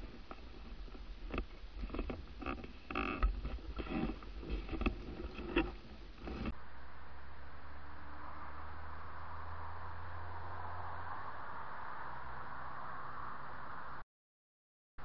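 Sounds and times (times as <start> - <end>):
low hum: 0.0 - 14.0.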